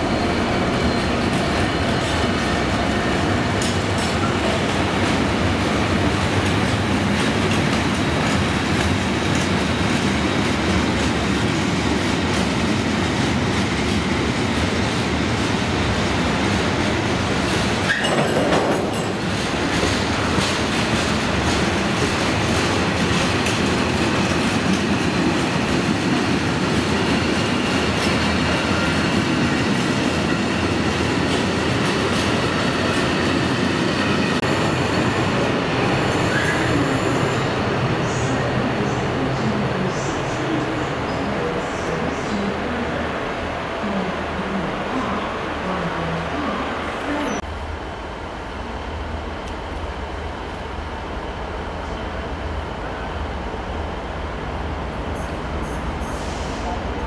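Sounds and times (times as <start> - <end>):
train wheels clattering over rail joints: 17.5 - 26.0.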